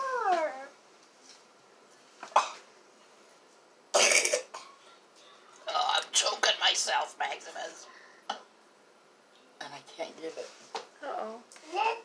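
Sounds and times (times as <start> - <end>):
cough: 2.3 - 2.7, 3.9 - 4.8.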